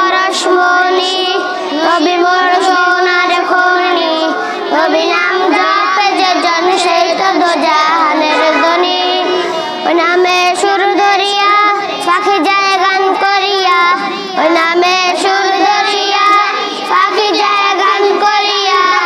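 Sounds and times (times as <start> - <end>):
boys singing devotional song: 0.0 - 19.0
singers breathing: 1.4 - 1.8, 4.3 - 4.8, 9.3 - 9.9, 14.0 - 14.4.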